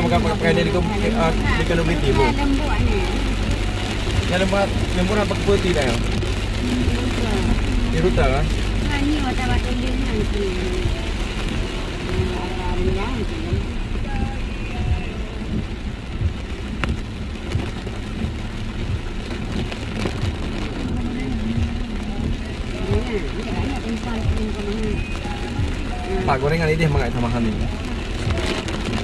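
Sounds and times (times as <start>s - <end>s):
faint voices: 0.0s - 17.0s, 19.3s - 29.0s
car engine and road noise: 0.0s - 29.0s
heavy rain on car roof: 0.0s - 29.0s.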